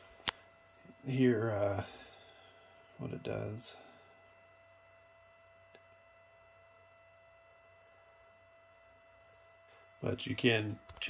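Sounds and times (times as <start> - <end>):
faint high whine: 0.0 - 11.0.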